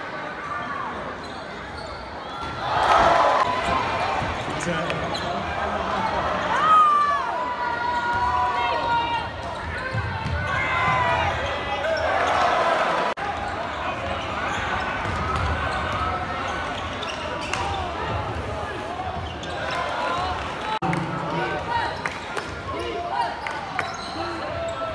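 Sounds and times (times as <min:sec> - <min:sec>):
crowd voices hubbub: 0:00.0 - 0:24.9
sneakers squeaking: 0:01.0 - 0:07.1, 0:07.7 - 0:20.4, 0:21.7 - 0:24.9
basketball bouncing: 0:09.6 - 0:11.2.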